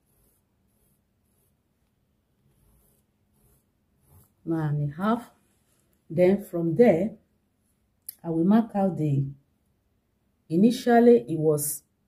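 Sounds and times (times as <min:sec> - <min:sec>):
marking tool scratching fabric: 0:00.0 - 0:04.6.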